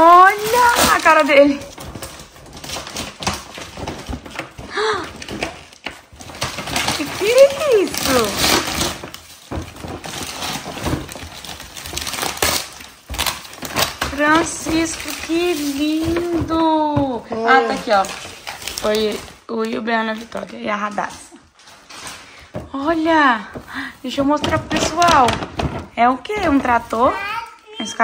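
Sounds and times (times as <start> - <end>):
wrapping paper and bag rustling: 0.0 - 28.0
person speaking: 14.2 - 18.2.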